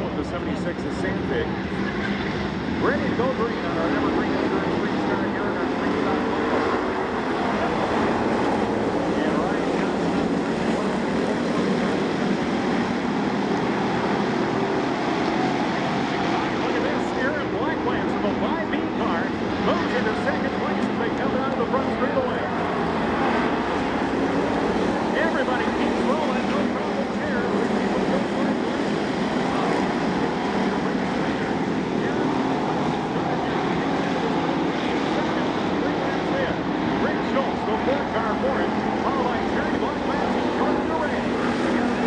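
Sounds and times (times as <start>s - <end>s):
racing car engines: 0.0s - 42.0s.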